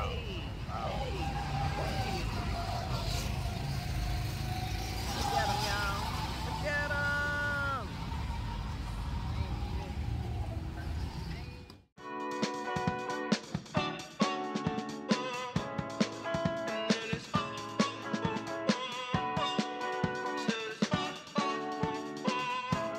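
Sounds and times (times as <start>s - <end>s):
people calling out: 0.0s - 3.5s, 5.0s - 7.9s
go-kart engines running: 0.0s - 11.8s.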